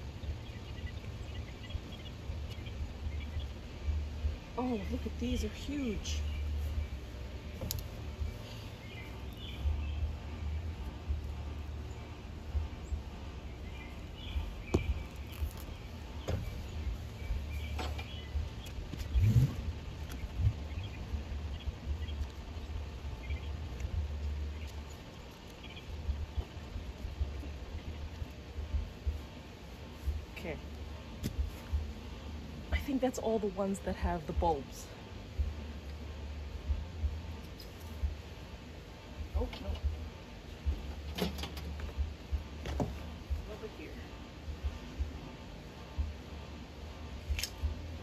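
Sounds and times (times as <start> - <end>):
pruning shears snipping: 47.3 - 47.7.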